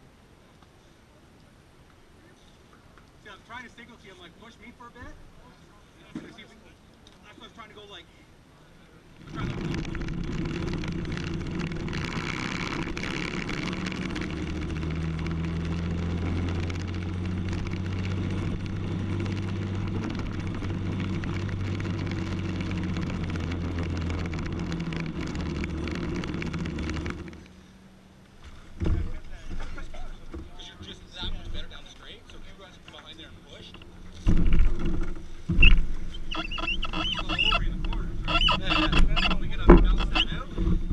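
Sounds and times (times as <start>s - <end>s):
kart engine running: 9.2s - 27.8s, 28.8s - 40.9s.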